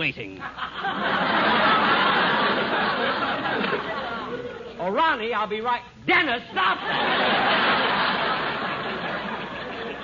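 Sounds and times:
studio audience laughing: 0.4 - 4.8, 6.6 - 10.0.

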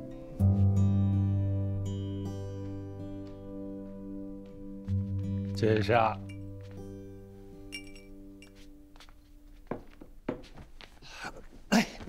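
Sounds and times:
soft background music: 0.0 - 10.7
drinking glass clinking: 6.2 - 6.5, 7.7 - 8.6.

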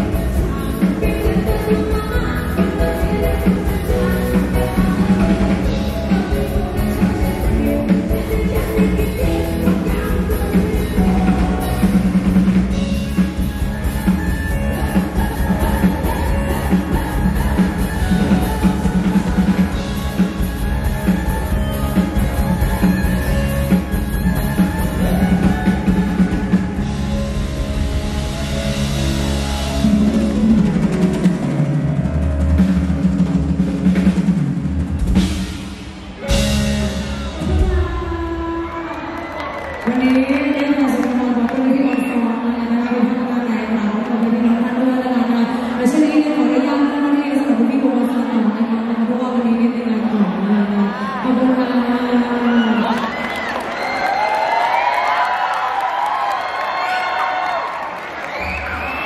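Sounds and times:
live band held chords: 0.0 - 48.7
concert crowd cheering: 0.0 - 59.0.

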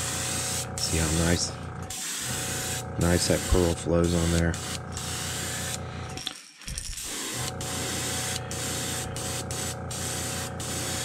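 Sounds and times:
steady low hum: 0.0 - 11.0
airbrush spraying hiss: 7.0 - 11.0.

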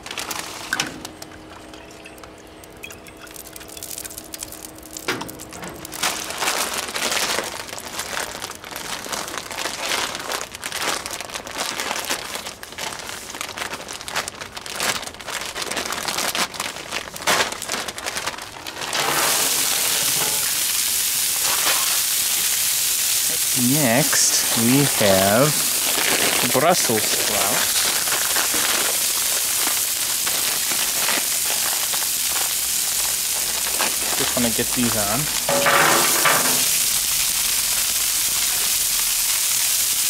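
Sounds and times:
plastic crinkling: 0.0 - 2.1, 3.3 - 40.0
vegetables sizzling on griddle: 18.8 - 40.0.

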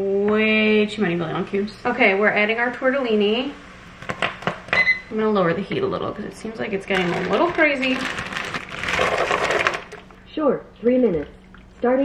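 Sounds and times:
broth boiling in a pot: 0.0 - 10.5.

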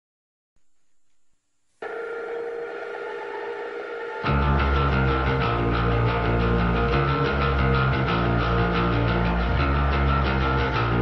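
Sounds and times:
steady electronic chord tone: 1.8 - 11.0.

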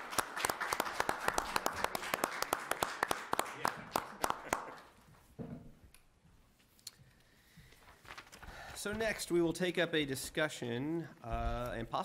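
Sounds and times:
small group applauding: 0.0 - 5.0.

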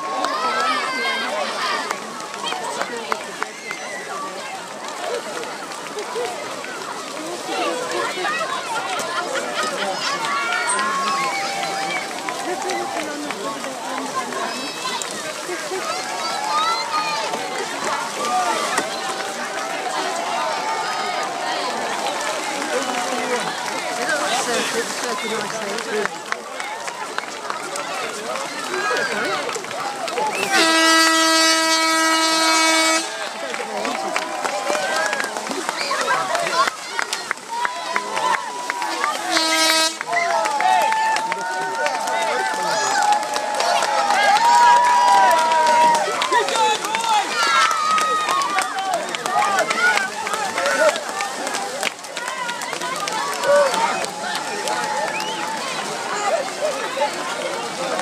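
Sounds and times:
children's voices: 0.0 - 30.8, 32.8 - 58.0
crowd chatter: 0.0 - 58.0
horn long blast: 30.4 - 33.5, 38.8 - 40.3.

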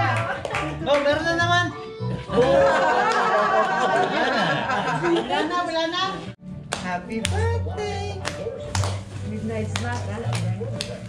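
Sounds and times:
rhythmic hand clapping: 0.0 - 1.4, 2.8 - 3.5, 6.7 - 11.0
music: 0.0 - 11.0.

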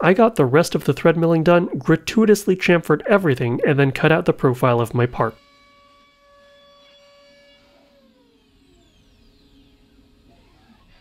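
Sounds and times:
milling spindle whining: 5.4 - 11.0.

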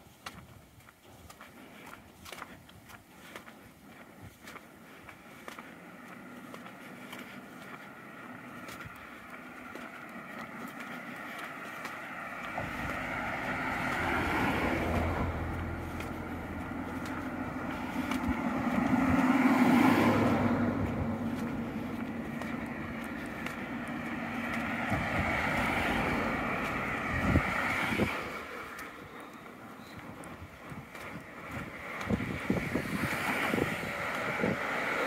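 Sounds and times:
cars passing: 1.2 - 35.0.

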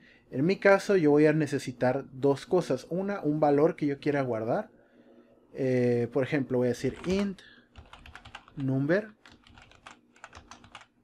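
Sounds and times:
typing on computer keyboard: 6.9 - 11.0.

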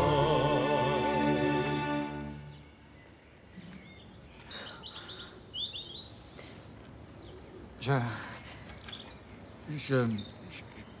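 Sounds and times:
faint outdoor background noise: 0.0 - 11.0
bird singing trilling phrases: 2.3 - 6.6, 7.2 - 11.0.

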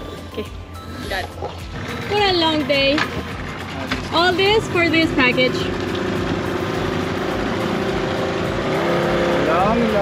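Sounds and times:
small outboard motor running: 0.9 - 10.0.

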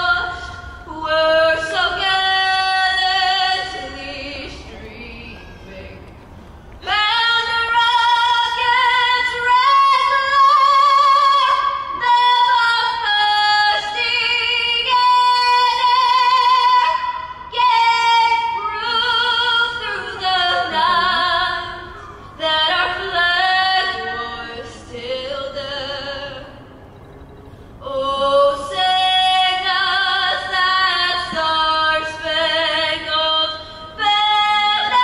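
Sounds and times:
woman singing unaccompanied: 0.0 - 6.1, 6.8 - 26.6, 27.8 - 35.0.

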